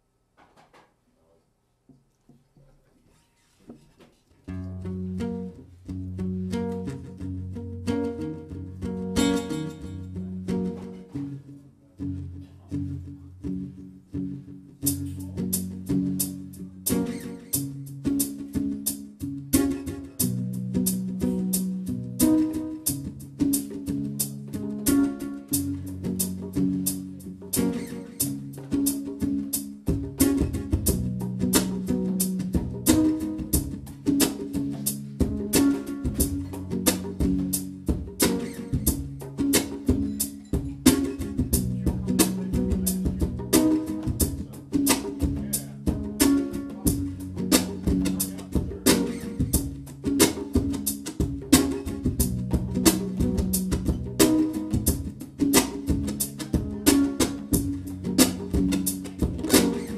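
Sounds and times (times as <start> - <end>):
acoustic guitar: 2.5 - 59.9
percussive beat: 6.5 - 11.4, 14.8 - 59.9.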